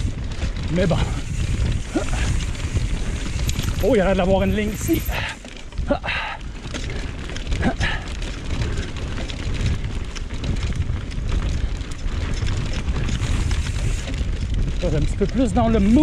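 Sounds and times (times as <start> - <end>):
bike rattling and clicking: 0.0 - 16.0
tyre rumble on dirt: 0.0 - 16.0
wind rushing over microphone: 0.0 - 16.0.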